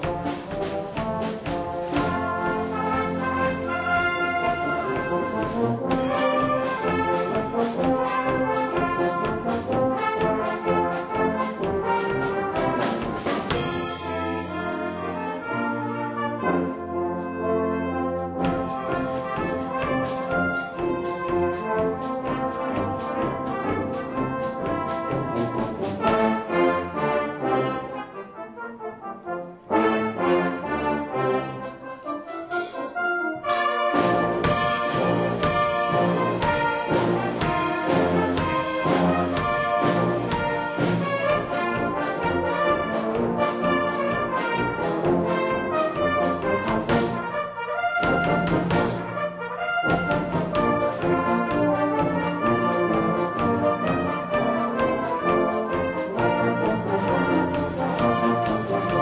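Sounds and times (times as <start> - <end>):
drum kit beat: 0.0 - 17.1, 18.2 - 26.5, 32.5 - 59.0
brass band playing: 0.0 - 59.0.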